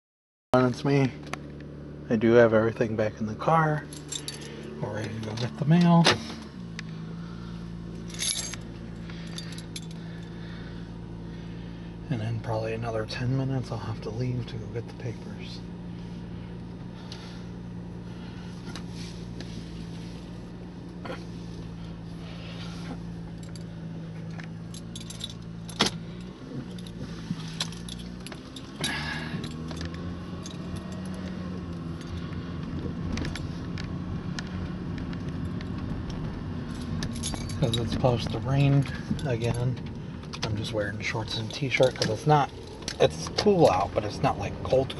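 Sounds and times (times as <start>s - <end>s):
car engine idling: 0.6s - 44.9s
metallic jingle: 3.9s - 4.7s, 8.0s - 10.3s, 24.6s - 32.3s, 36.7s - 39.6s.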